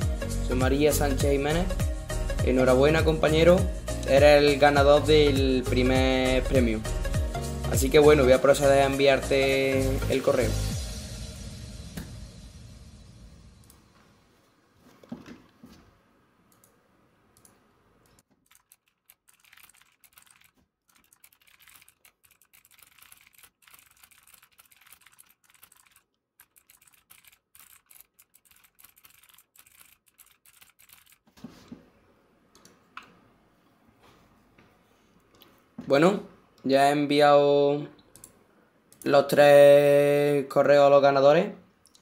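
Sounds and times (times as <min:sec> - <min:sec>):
faint typing on a computer keyboard: 0:16.5 - 0:31.2, 0:38.1 - 0:39.1.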